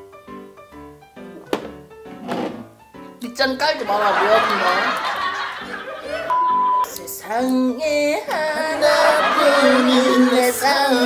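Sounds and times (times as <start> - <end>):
soft sustained background music: 0.0 - 11.0.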